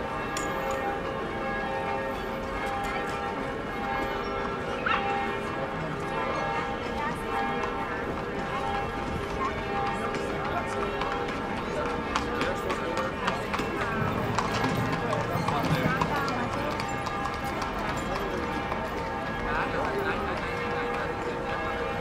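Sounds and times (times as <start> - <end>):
people talking: 4.7 - 21.8.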